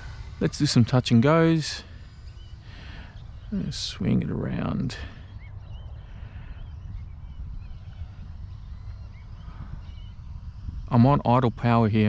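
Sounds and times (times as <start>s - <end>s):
low steady rumble: 0.0s - 12.0s
faint bird chirps: 0.1s - 12.0s.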